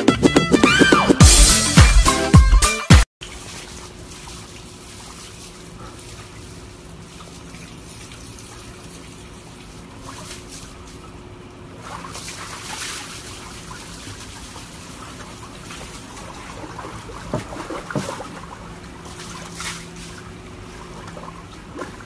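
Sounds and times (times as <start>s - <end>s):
water sloshing in plastic tub: 3.2s - 22.0s.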